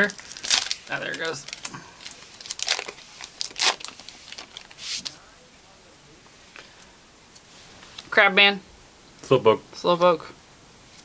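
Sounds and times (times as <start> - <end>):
foil wrapper crinkling: 0.0 - 5.2.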